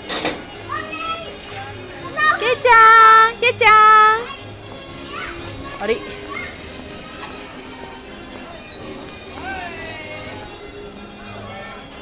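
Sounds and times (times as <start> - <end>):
young children chattering: 0.6 - 12.0.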